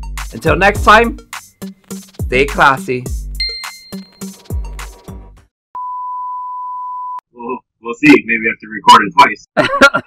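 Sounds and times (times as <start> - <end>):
music: 0.0 - 5.5
electronic test tone beep: 3.4 - 4.3, 5.8 - 7.2.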